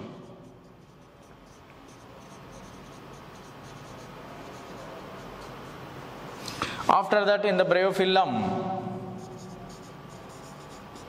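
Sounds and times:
marker pen writing on whiteboard: 0.0 - 6.6, 8.9 - 11.0.

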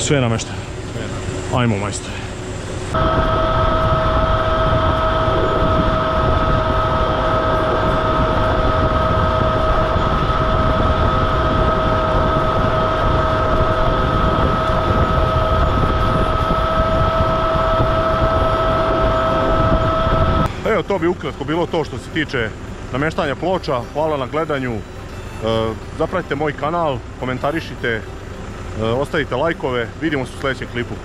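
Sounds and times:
tractor rumble: 0.0 - 31.0
vacuum fan high whine: 0.0 - 31.0.

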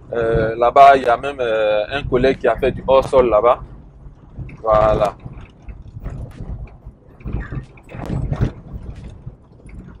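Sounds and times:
car road rumble: 0.0 - 10.0
knocks over bumps: 1.9 - 10.0.

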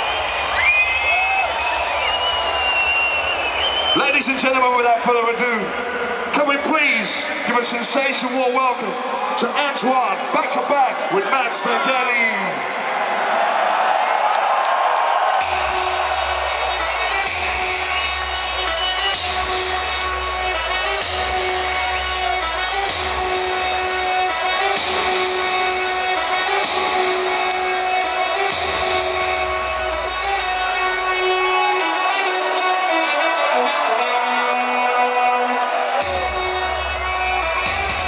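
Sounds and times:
electronic dance music: 0.0 - 12.7, 15.4 - 38.0.

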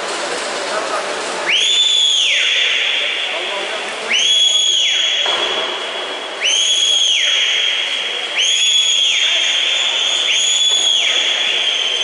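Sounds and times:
steady background noise: 0.0 - 12.0
whistle blowing long blasts: 1.4 - 12.0.

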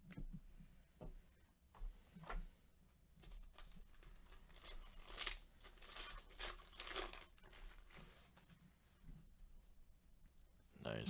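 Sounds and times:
foil wrapper tearing and crinkling: 3.2 - 8.1.

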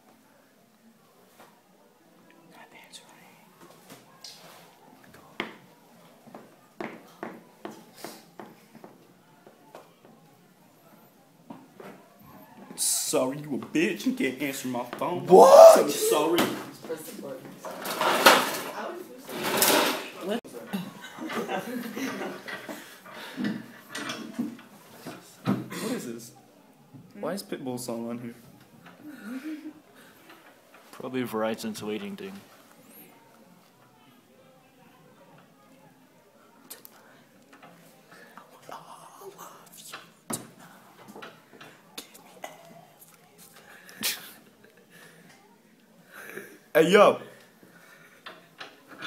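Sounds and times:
people whispering: 2.2 - 5.4, 35.2 - 49.0
murmuring voices: 15.2 - 27.0, 32.6 - 46.7.

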